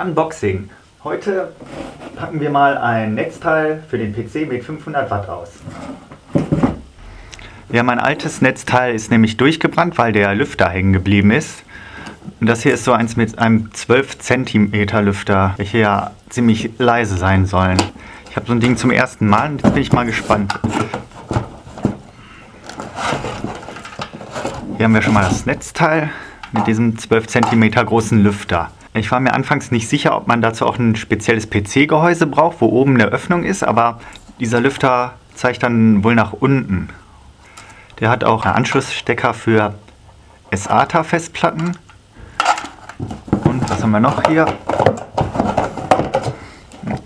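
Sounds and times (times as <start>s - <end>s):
cardboard and cable rustles: 5.6s - 6.9s, 18.2s - 25.6s, 42.4s - 47.0s.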